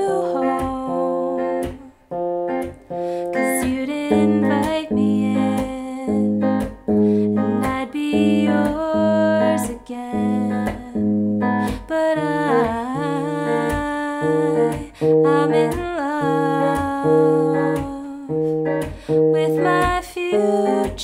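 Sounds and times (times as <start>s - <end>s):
fingerpicked electric guitar: 0.0s - 21.0s.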